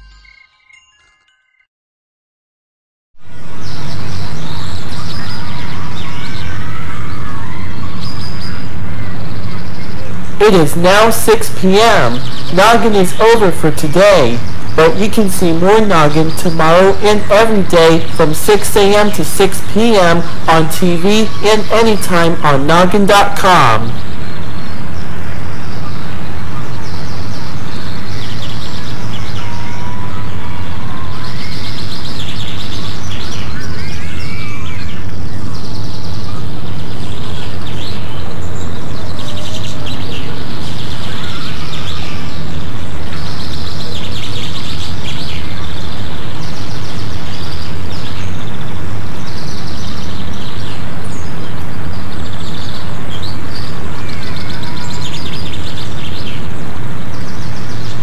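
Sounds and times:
birds chirping: 3.3s - 58.0s.

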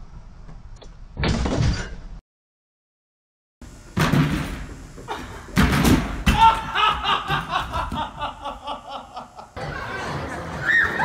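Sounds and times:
loud crash of person falling: 5.6s - 8.0s.

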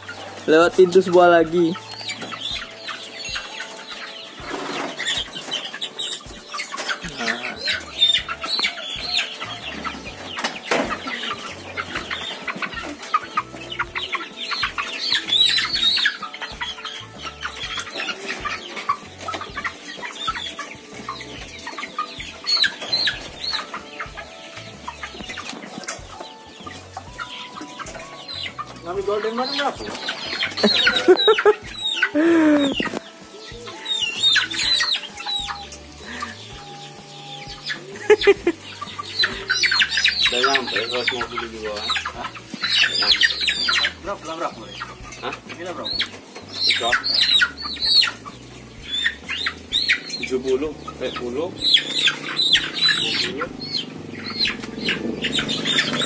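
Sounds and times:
chickens clucking and squawking: 0.0s - 56.0s.

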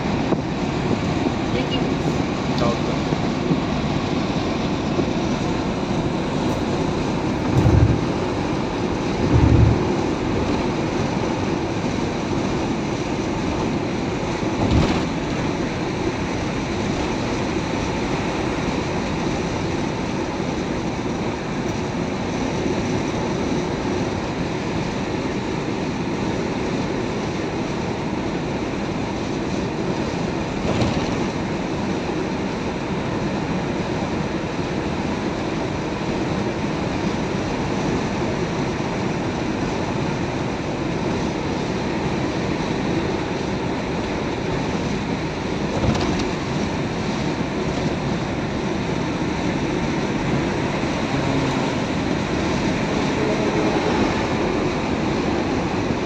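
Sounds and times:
road and engine noise in cabin: 0.0s - 56.0s
low thumps: 7.4s - 8.2s, 9.2s - 10.5s.

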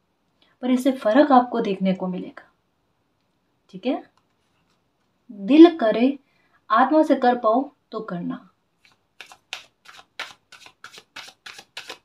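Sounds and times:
cards being shuffled: 8.8s - 12.0s.

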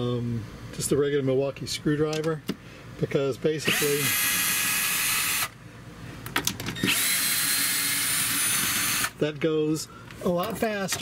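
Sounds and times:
cordless screwdriver motor whining: 3.6s - 5.6s, 6.8s - 9.2s.

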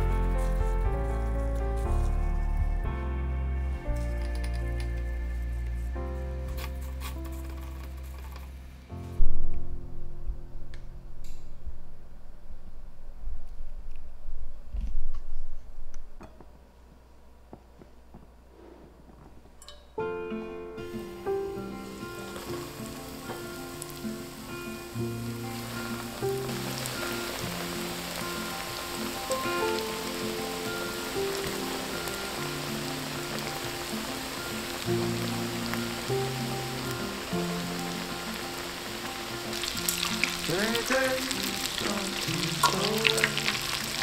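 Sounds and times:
instrumental background music: 0.0s - 11.4s, 19.6s - 44.0s
chicken frying in hot oil: 21.6s - 44.0s.

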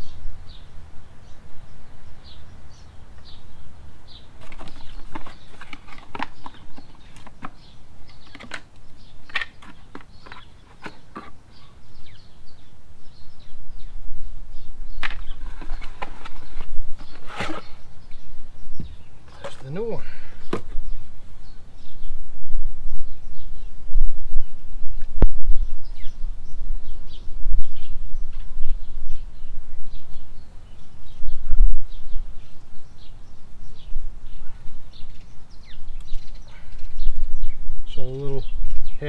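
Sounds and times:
faint bird chirps: 0.0s - 39.0s.

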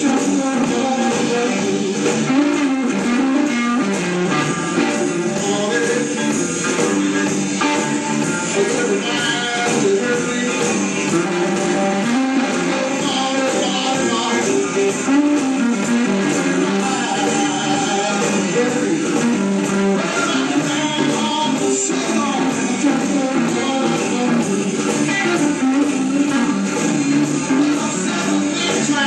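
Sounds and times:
electric guitar: 0.0s - 29.0s
live blues band playing: 0.0s - 29.0s.

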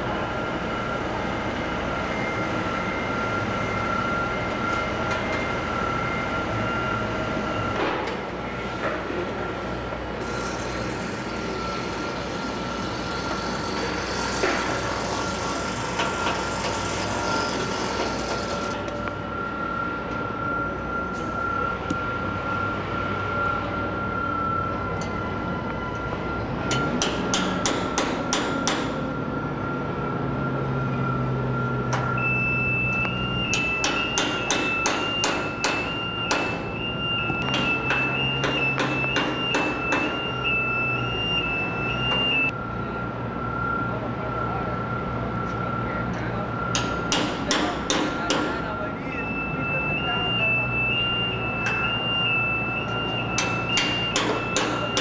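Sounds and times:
machine engine whining: 0.0s - 55.0s.

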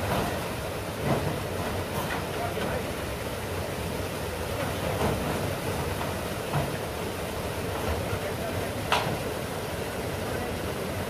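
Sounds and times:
waterfall rushing into pool: 0.0s - 11.0s.

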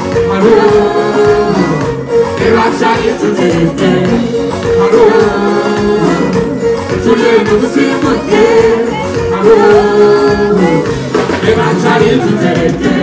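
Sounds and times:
live band with person singing: 0.0s - 13.0s.

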